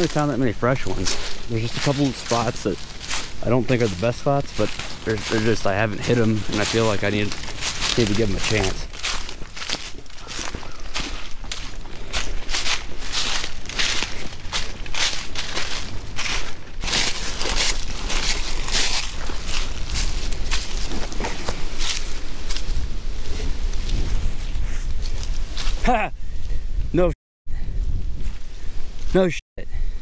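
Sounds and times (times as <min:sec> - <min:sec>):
footsteps crunching dry leaves: 0:00.0 - 0:25.8.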